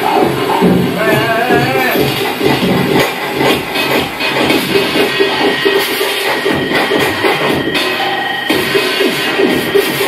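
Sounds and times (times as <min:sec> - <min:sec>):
electronic noise music: 0:00.0 - 0:10.0
stuttering beats: 0:00.0 - 0:10.0.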